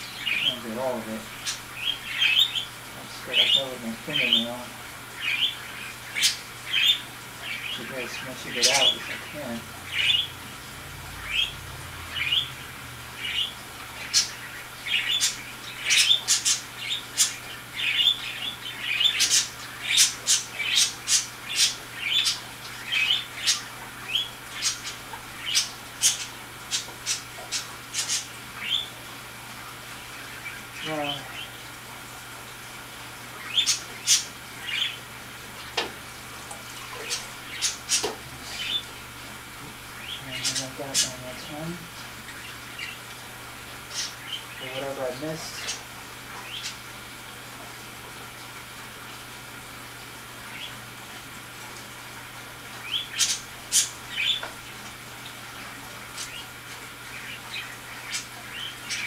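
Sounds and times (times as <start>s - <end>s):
bird chirping and squawking: 0.0s - 10.4s, 11.2s - 29.0s, 33.4s - 35.1s, 36.8s - 39.1s, 39.9s - 43.1s, 43.8s - 46.8s, 52.8s - 54.4s.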